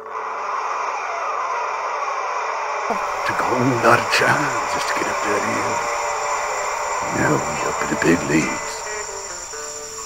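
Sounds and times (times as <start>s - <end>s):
steady rushing noise: 0.0s - 10.0s
faint low hum: 2.9s - 10.0s.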